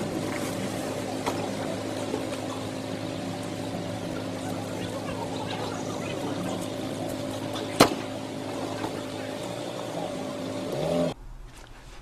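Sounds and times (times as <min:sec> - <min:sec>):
faint voices: 0:00.0 - 0:11.2
vehicle engine running: 0:00.0 - 0:11.2.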